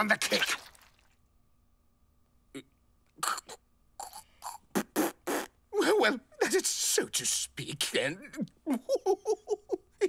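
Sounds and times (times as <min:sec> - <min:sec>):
man stifling laughter: 0:08.7 - 0:10.0.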